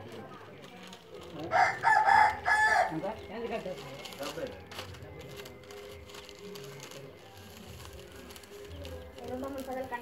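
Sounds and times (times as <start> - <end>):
rooster crowing: 1.5 - 3.0.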